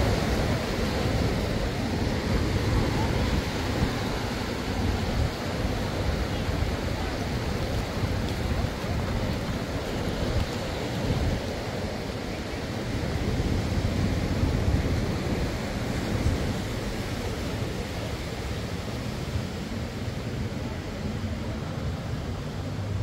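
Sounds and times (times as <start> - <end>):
small waves washing ashore: 0.0 - 23.0
wind on microphone: 0.0 - 23.0.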